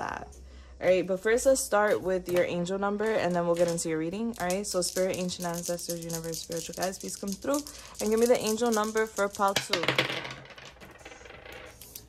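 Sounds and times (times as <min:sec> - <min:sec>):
dice clattering on table: 0:03.0 - 0:12.0.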